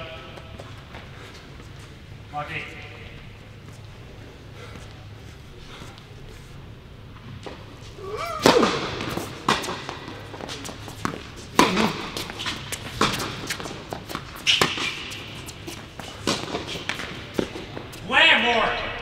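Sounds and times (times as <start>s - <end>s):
tennis ball hit with racket: 8.2s - 17.8s.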